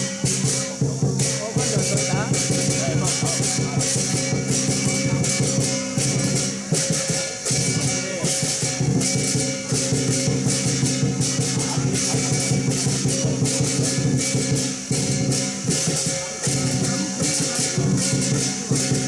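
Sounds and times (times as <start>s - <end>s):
big drum beating: 0.0s - 19.0s
hand cymbals ringing: 0.0s - 19.0s.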